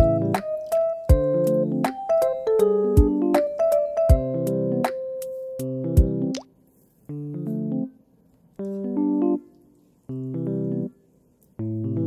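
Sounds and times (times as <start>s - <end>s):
background music with a beat: 0.0s - 6.5s.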